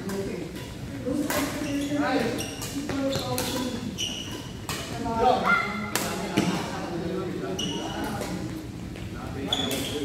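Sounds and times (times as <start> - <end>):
shoe squeaks on court floor: 1.6 - 4.6, 7.5 - 8.1, 9.4 - 10.0
racket hitting shuttlecock: 5.8 - 6.7.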